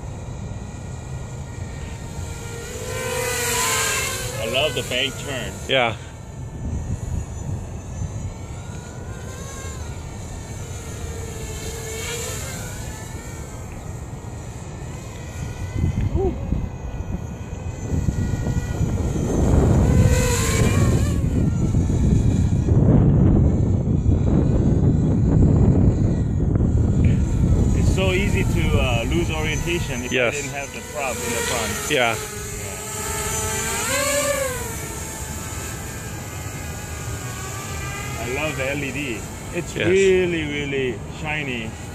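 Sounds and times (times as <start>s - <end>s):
drone propellers whining: 0.0s - 41.9s.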